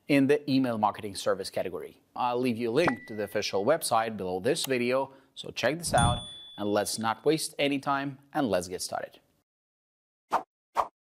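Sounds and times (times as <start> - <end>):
pop sound effects: 2.8 - 3.1.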